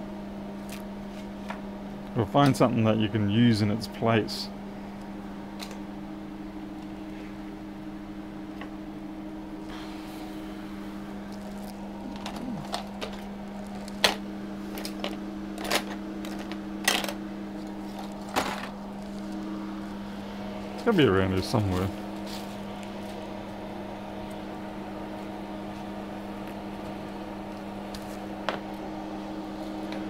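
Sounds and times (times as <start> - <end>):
steady electrical hum: 0.0 - 30.0.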